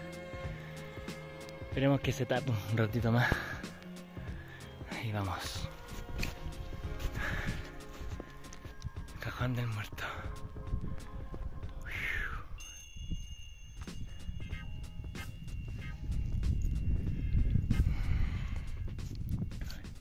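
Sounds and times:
footsteps crunching in snow: 0:03.3 - 0:09.2
wind rumbling on microphone: 0:05.8 - 0:20.0.

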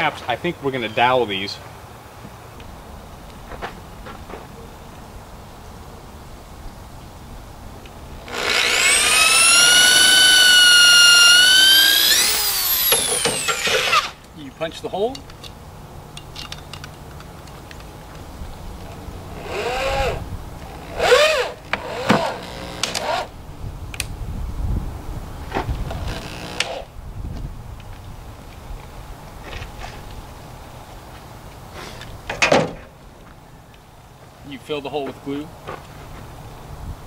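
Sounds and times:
electric drill boring wood: 0:08.2 - 0:14.2, 0:19.4 - 0:23.3, 0:26.0 - 0:26.9.

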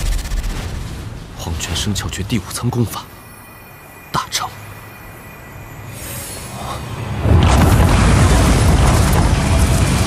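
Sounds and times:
thunder boom and rumble: 0:07.2 - 0:10.0.

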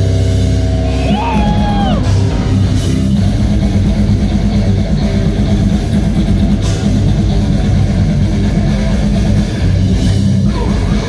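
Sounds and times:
death metal band playing live: 0:00.0 - 0:11.0.

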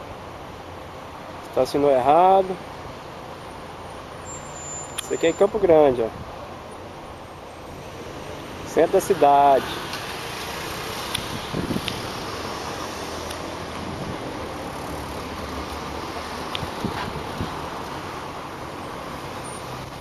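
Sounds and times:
cars passing: 0:00.0 - 0:20.0.

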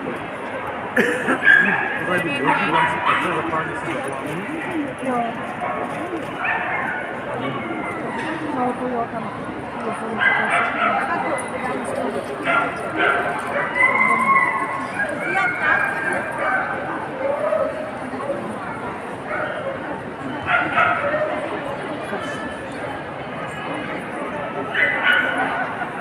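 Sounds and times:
crowd chatter: 0:00.0 - 0:26.0
dogs barking and yipping: 0:01.4 - 0:03.4, 0:10.2 - 0:11.3, 0:12.4 - 0:16.9, 0:20.5 - 0:21.4, 0:24.6 - 0:26.0.

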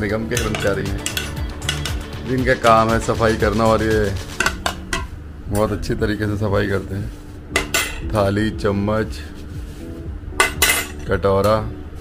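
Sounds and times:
ceramic bowls clinking: 0:00.3 - 0:02.0, 0:10.4 - 0:11.1.

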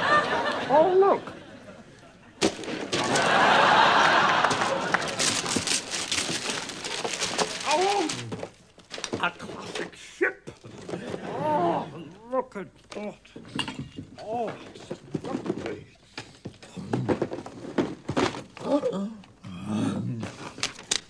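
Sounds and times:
wrapping paper tearing: 0:04.5 - 0:09.1.

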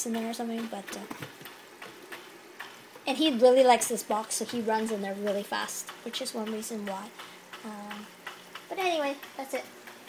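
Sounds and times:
water fountain trickling: 0:00.0 - 0:09.7
light ticks: 0:00.1 - 0:02.8, 0:04.4 - 0:10.0.

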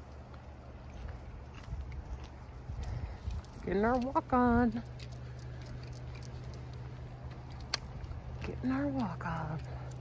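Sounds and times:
footsteps on paved road: 0:00.0 - 0:10.0
steady low rumble: 0:00.0 - 0:10.0.

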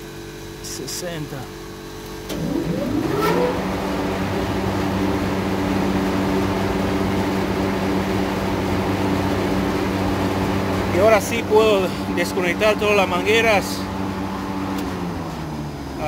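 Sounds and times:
electric motor humming: 0:02.3 - 0:09.0.

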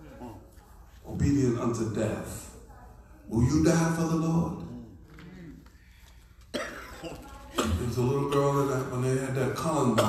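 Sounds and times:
person coughing: 0:06.5 - 0:08.6.

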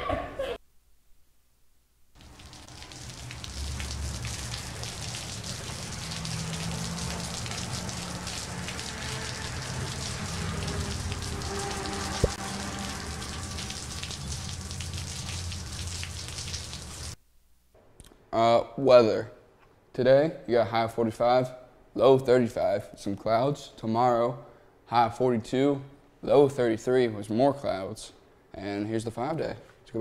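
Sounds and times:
rain falling on water: 0:02.1 - 0:17.2.

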